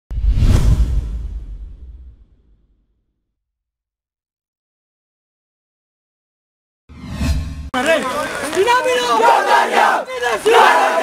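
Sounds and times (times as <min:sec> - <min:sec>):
whoosh: 0:00.1 - 0:02.8, 0:06.9 - 0:07.7.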